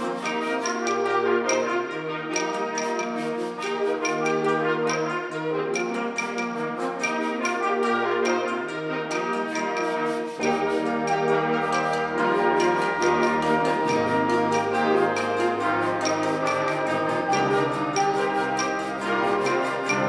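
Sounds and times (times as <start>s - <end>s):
brass and woodwind chords: 0.0s - 20.0s
percussion beat: 0.0s - 20.0s.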